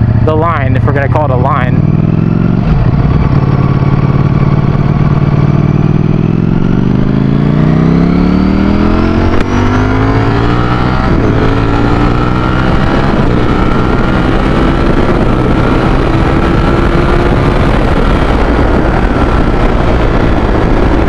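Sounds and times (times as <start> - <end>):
motorcycle engine accelerating: 0.0 - 21.0.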